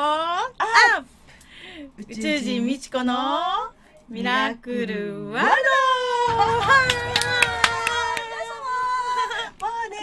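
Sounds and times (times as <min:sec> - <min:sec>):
hand clapping: 0:06.7 - 0:08.3.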